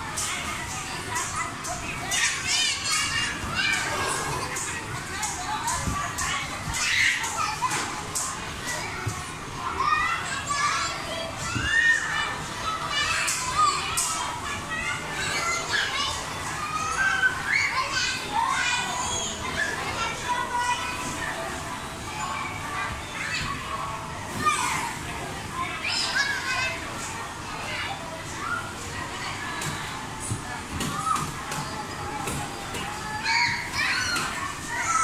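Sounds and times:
background hubbub: 0.0s - 35.0s
children calling and chattering: 0.0s - 35.0s.

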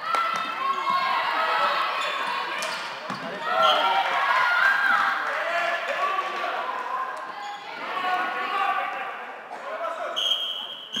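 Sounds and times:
voices in sports hall: 0.0s - 11.0s
referee's whistle long blast: 10.2s - 11.0s.

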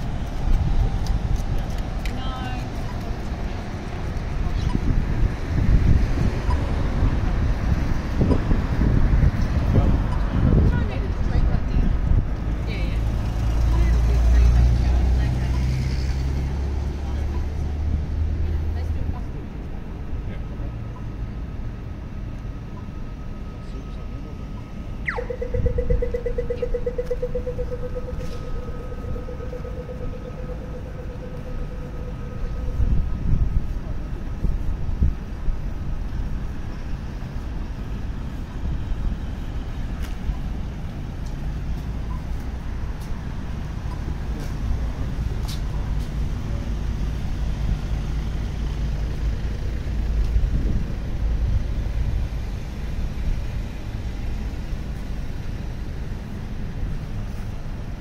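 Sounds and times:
vehicle passing close: 0.0s - 20.2s
crossing signal rapid ticking: 0.0s - 58.0s
street traffic: 0.0s - 58.0s.

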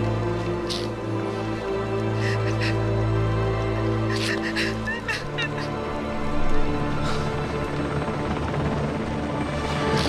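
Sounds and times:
film score with held notes: 0.0s - 10.0s.

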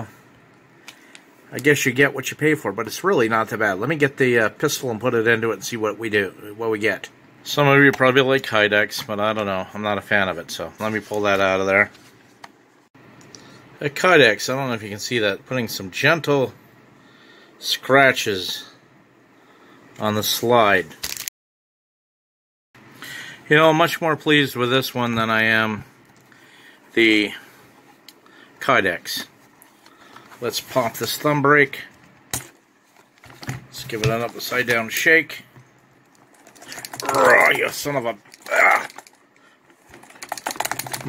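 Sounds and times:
pistol rattling in holster: 39.8s - 41.0s.

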